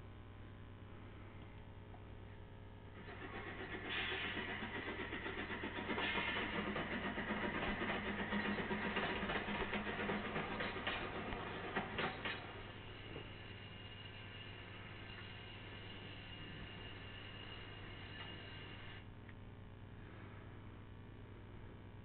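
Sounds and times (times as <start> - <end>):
motor-like noise: 2.9 - 19.1.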